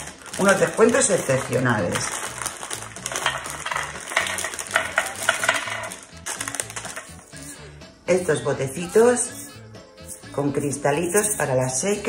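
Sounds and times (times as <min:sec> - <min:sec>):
plastic packaging rustling: 0:00.0 - 0:07.3
soft background music: 0:00.0 - 0:12.0
small jars clicking together: 0:02.0 - 0:07.2.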